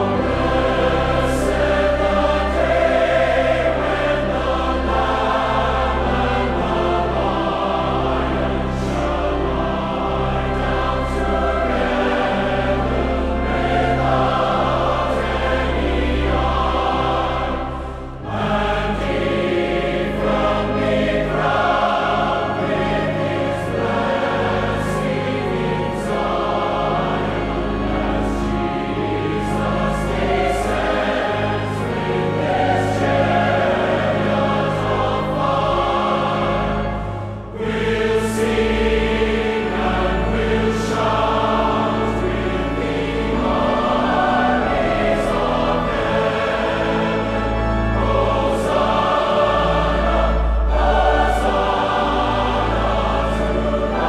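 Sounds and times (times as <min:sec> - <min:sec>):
choir singing a hymn: 0:00.0 - 0:54.0
sustained instrumental accompaniment: 0:00.0 - 0:54.0.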